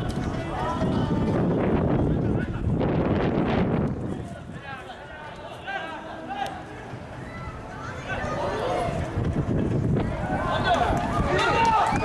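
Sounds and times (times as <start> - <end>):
voices calling out and talking: 0.0 - 12.0.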